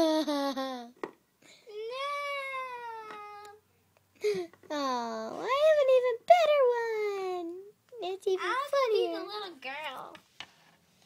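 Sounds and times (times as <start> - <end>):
girl's high-pitched cries: 1.7 - 3.6.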